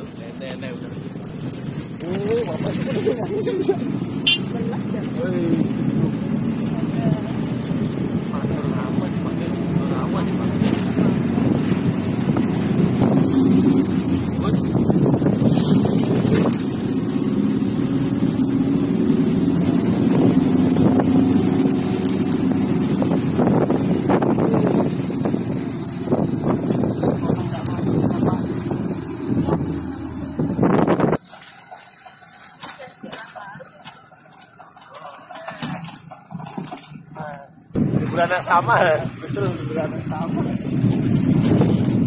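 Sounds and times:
motorcycle engine running: 0.1 - 42.0.

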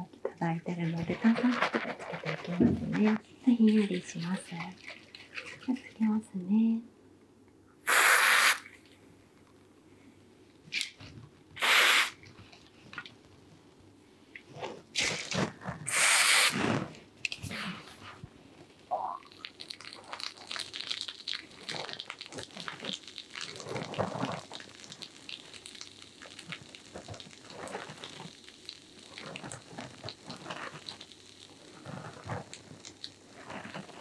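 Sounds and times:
aerosol foam spraying: 7.9 - 8.7, 11.6 - 12.2, 15.9 - 16.6
fingers crackling foam in hair: 19.1 - 34.0.

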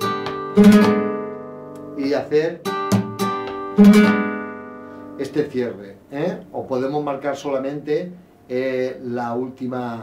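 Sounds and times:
flamenco guitar strumming: 0.0 - 5.8.

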